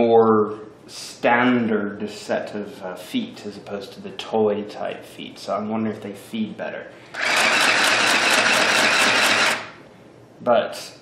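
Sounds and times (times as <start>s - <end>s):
sewing machine running: 7.1s - 9.8s.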